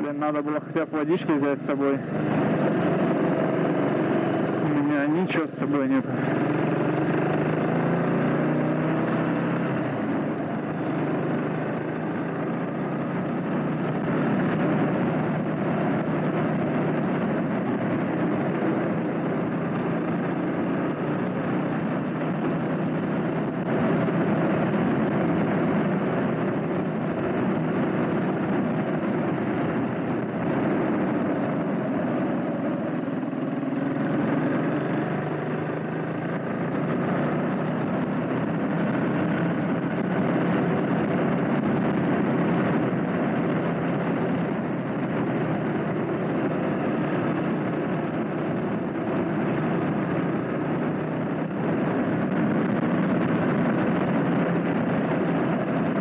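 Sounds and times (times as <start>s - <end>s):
motorcycle engine running: 0.0s - 56.0s
road noise: 0.0s - 56.0s.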